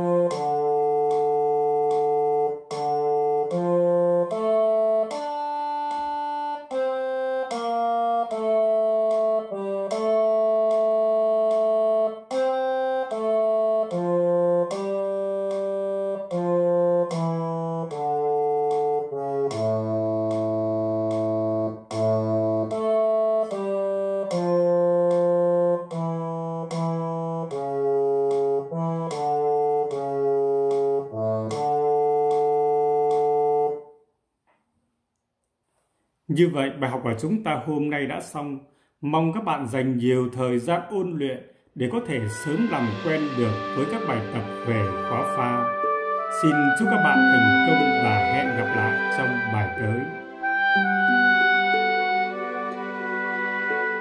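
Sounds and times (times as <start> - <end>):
instrument playing held notes: 0.0 - 34.0, 41.8 - 54.0.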